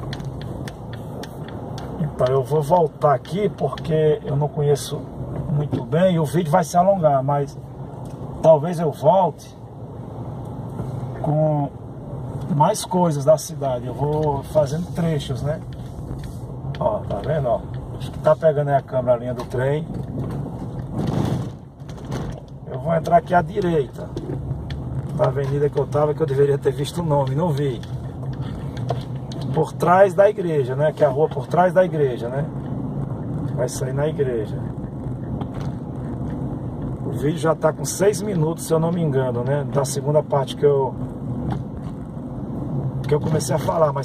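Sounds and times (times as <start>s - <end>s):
car engine hum: 0.0s - 44.0s
road noise: 0.0s - 44.0s.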